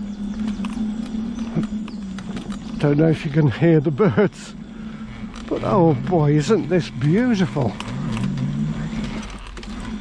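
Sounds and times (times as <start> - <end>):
electric motor hum: 0.0 - 10.0
faint birdsong: 0.0 - 10.0
tyres crackling over leaves: 0.0 - 10.0.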